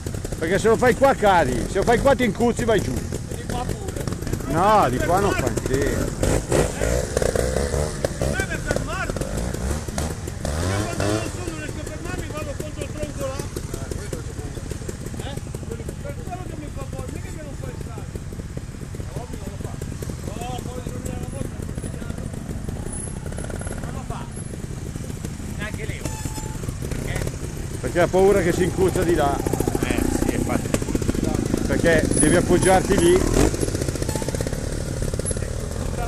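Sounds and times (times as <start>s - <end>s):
motorcycle engines idling and revving: 0.0s - 36.0s.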